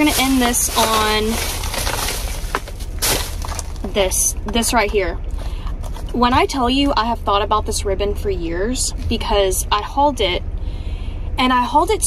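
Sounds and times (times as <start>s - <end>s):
plastic bag rustling and crinkling: 0.0s - 4.3s.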